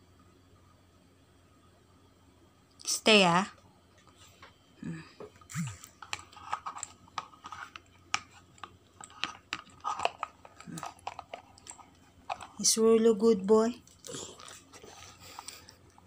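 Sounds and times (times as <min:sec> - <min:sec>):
chewing raw carrot crunches: 0:13.9 - 0:16.0.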